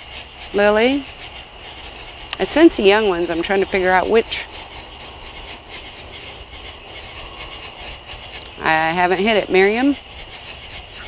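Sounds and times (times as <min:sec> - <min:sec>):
crickets chirring: 0:00.0 - 0:11.0
low rumble: 0:01.4 - 0:10.3.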